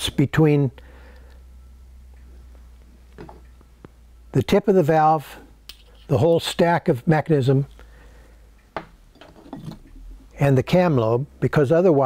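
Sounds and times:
low hum: 0:00.0 - 0:06.2
handling small engine parts: 0:09.1 - 0:10.1.

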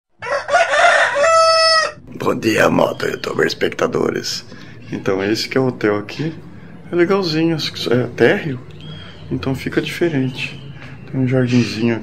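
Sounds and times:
rooster crowing: 0:00.2 - 0:02.0.

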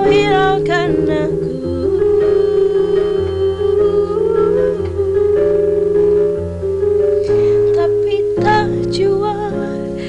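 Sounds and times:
woman humming a melody: 0:00.0 - 0:05.8
instrumental accompaniment with bass: 0:00.0 - 0:10.0.

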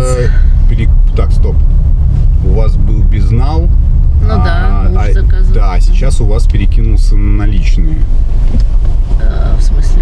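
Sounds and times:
person speaking: 0:00.0 - 0:00.6, 0:02.4 - 0:07.8
car cabin rumble: 0:00.0 - 0:10.0.

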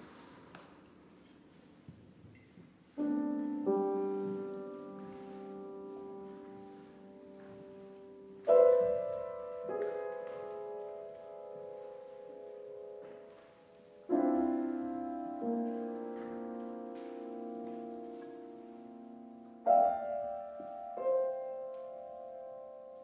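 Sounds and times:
piano chords: 0:02.9 - 0:23.0.

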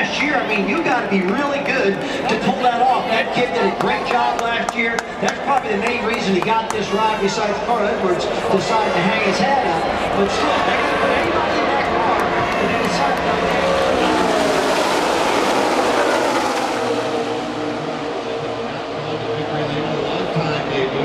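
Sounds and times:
race cars passing at full speed: 0:00.0 - 0:21.0.

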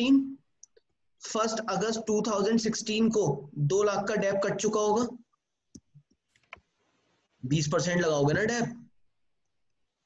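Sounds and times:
man speaking: 0:00.0 - 0:00.5, 0:01.2 - 0:05.3, 0:07.4 - 0:09.0.

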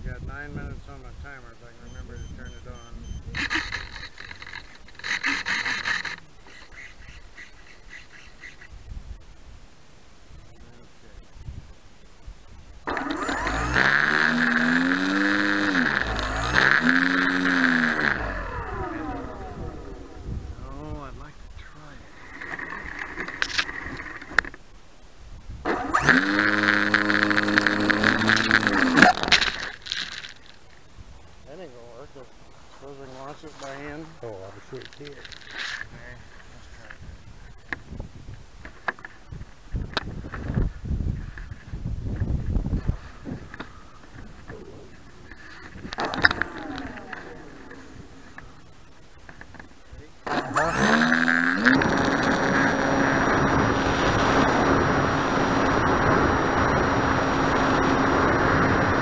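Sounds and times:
model aircraft motor and propeller: 0:01.8 - 0:08.7, 0:12.8 - 0:21.3, 0:22.0 - 0:24.6, 0:25.7 - 0:30.7, 0:42.4 - 0:59.0
brief rustle: 0:27.3 - 0:30.8, 0:32.7 - 0:37.9.

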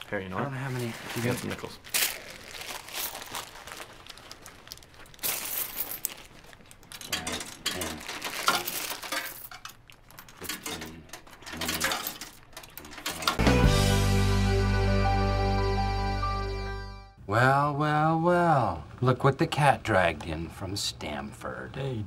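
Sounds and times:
coins clinking: 0:05.2 - 0:13.4
loud music: 0:13.4 - 0:17.2.

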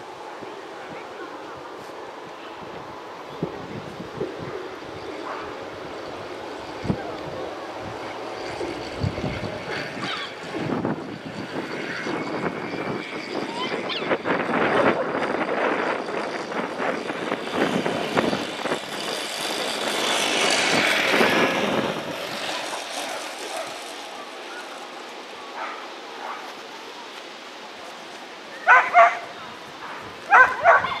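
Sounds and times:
dog barking loudly: 0:28.7 - 0:29.2, 0:29.9 - 0:31.0.

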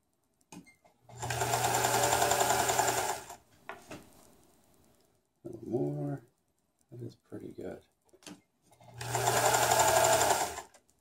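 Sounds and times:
sewing machine running: 0:01.1 - 0:03.4, 0:08.9 - 0:10.7.

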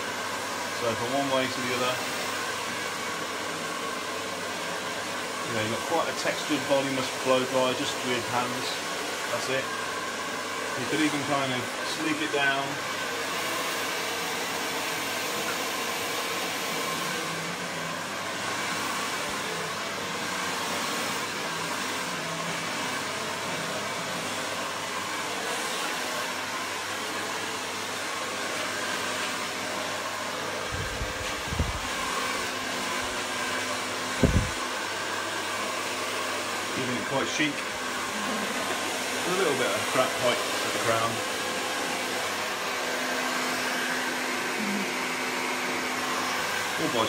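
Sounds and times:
hair dryer blowing: 0:00.0 - 0:47.0.

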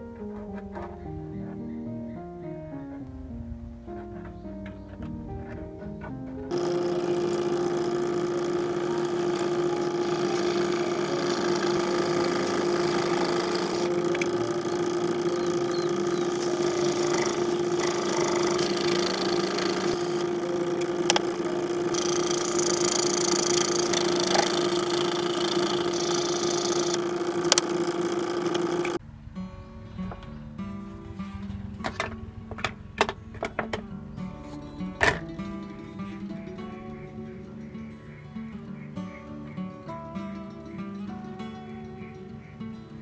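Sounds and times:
acoustic guitar music: 0:00.0 - 0:32.6, 0:33.2 - 0:43.0
saw blade cutting hiss: 0:06.5 - 0:29.0
scroll saw motor hum: 0:06.5 - 0:29.0
sharp clicks: 0:06.5 - 0:29.0.

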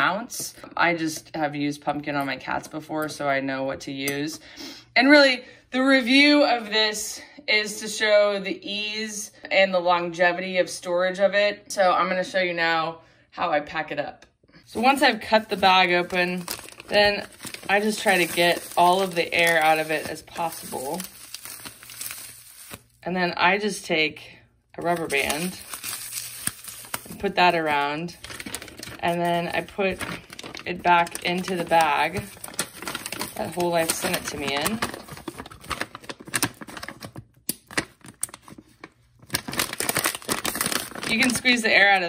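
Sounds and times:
plastic bag crinkling: 0:14.7 - 0:23.0, 0:24.8 - 0:41.9.

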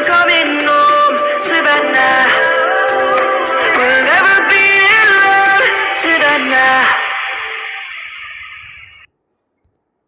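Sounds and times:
music: 0:00.0 - 0:08.7.

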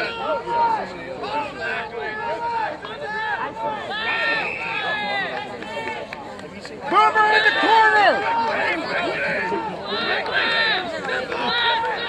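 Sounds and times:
whistle blast: 0:04.2 - 0:04.8
men shouting over one another: 0:06.9 - 0:12.0.

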